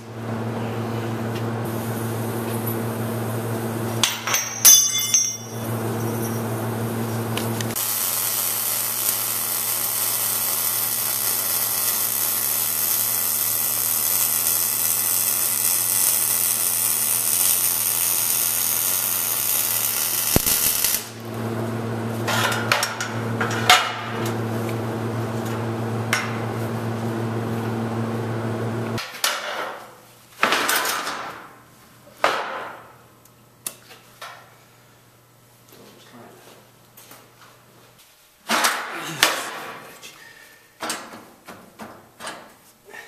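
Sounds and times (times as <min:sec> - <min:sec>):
welding arc crackling: 0:01.6 - 0:04.2, 0:05.5 - 0:29.0
metallic clinks of parts: 0:04.1 - 0:06.4.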